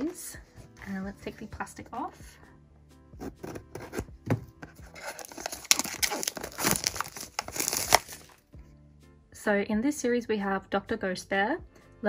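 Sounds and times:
plastic wrap crinkling and tearing: 0:04.8 - 0:08.4
blade slitting plastic wrap: 0:04.9 - 0:08.4.

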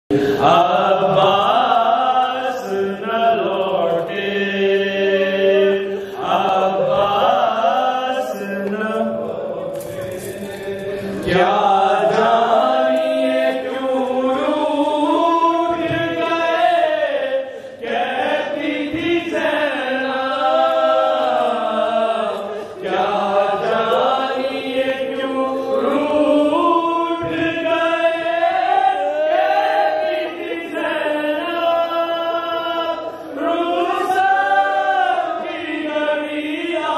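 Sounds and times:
man chanting into a microphone: 0:00.1 - 0:14.5.

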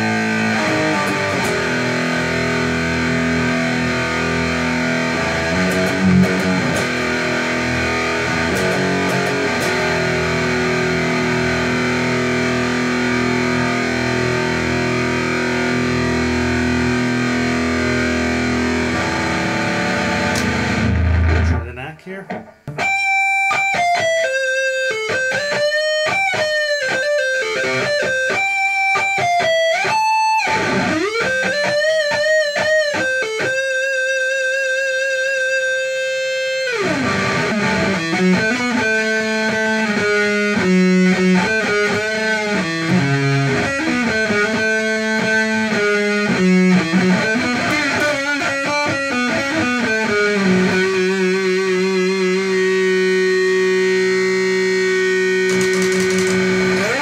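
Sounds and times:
electric guitar lead lines: 0:00.0 - 0:57.0
electric guitar riffing and chords: 0:00.0 - 0:57.0.

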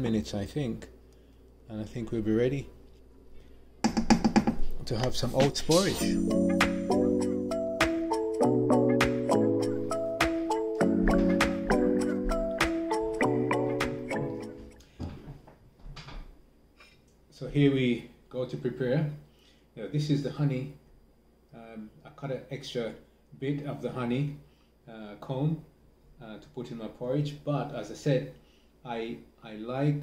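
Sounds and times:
man talking: 0:00.0 - 0:00.9, 0:01.7 - 0:02.7, 0:04.8 - 0:06.3.

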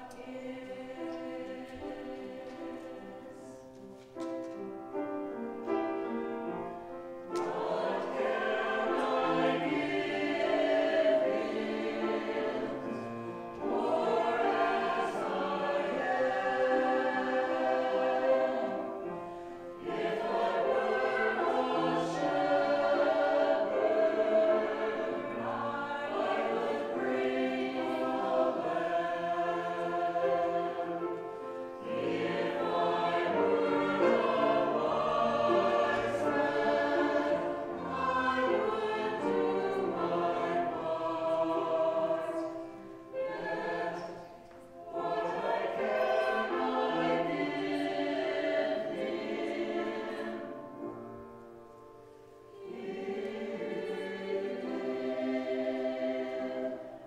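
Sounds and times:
church choir singing: 0:00.0 - 0:57.0.

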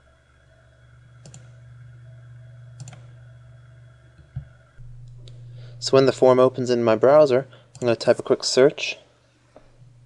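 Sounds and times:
steady low hum: 0:00.0 - 0:10.0
computer mouse clicks: 0:01.2 - 0:01.6, 0:02.8 - 0:03.1.

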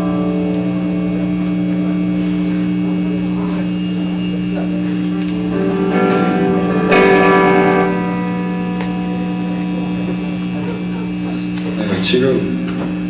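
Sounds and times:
low held chord: 0:00.0 - 0:12.8
heavy metal band playing live: 0:05.0 - 0:11.6.

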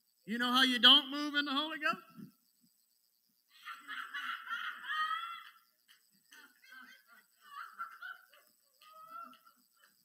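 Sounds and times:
congregation laughing: 0:03.6 - 0:10.0.

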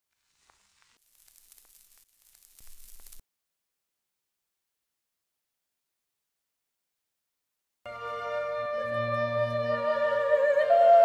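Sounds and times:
static hiss with crackles: 0:00.0 - 0:03.2.

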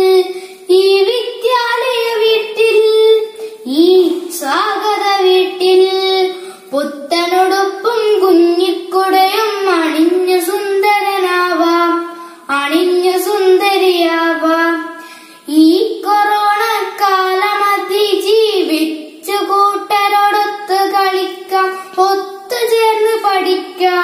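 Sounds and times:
boy singing: 0:00.0 - 0:24.0.

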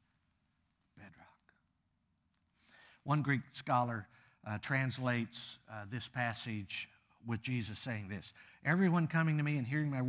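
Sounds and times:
man speaking softly: 0:01.0 - 0:01.5, 0:03.0 - 0:10.0
faint breath: 0:02.6 - 0:03.1, 0:04.1 - 0:04.4, 0:08.3 - 0:08.7.

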